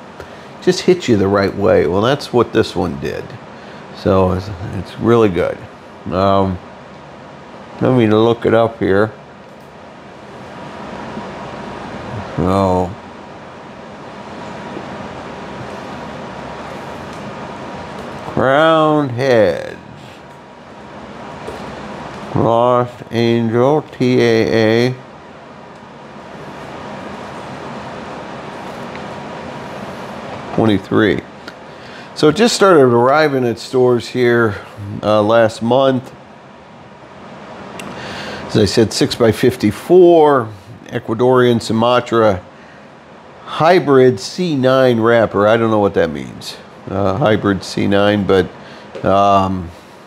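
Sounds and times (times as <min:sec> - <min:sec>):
low hum: 0:00.0 - 0:50.0
room noise hiss: 0:00.0 - 0:50.0.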